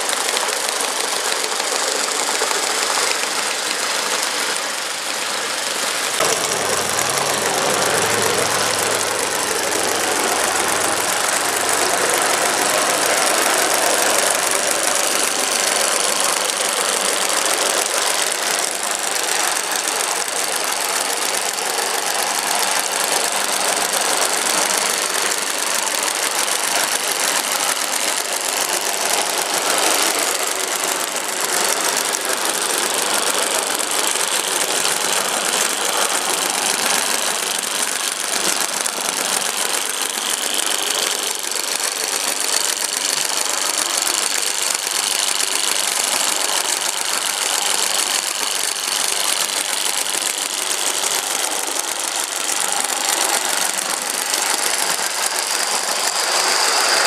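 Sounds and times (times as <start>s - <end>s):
tiny model engine running fast: 0.0s - 57.0s.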